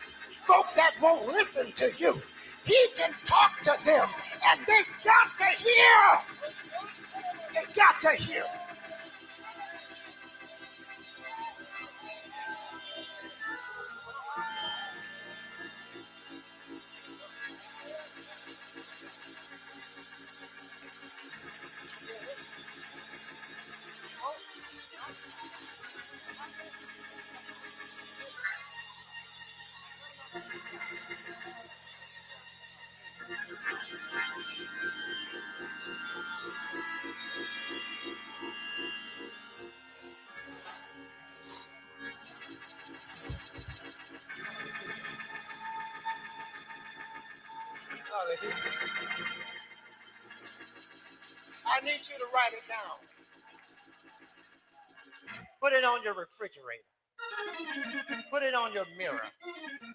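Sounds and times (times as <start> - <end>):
church keyboard chords: 0.0 - 28.1, 30.2 - 59.9
person calling out: 2.7 - 6.3.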